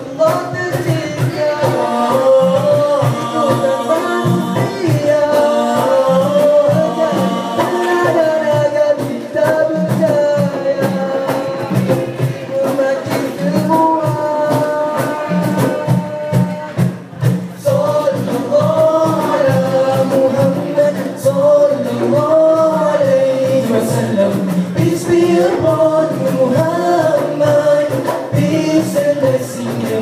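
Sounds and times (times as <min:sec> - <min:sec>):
boys singing through microphones: 0:00.0 - 0:30.0
steady rhythmic beat: 0:00.0 - 0:30.0.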